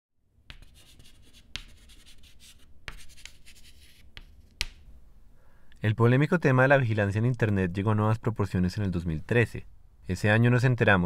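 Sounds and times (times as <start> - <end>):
chalk scratching on blackboard: 0.5 - 4.8
chalk tapping on board: 0.5 - 4.8.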